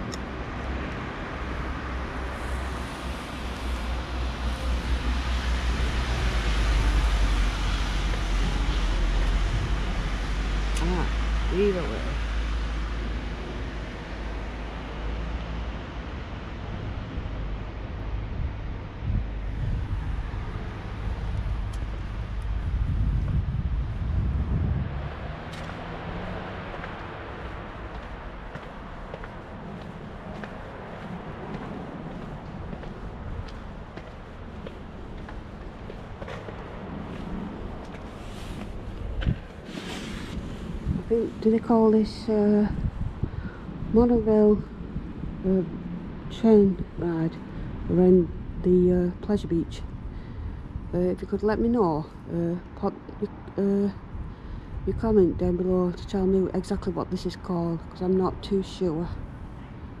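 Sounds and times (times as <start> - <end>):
vehicles passing: 0.0 - 60.0.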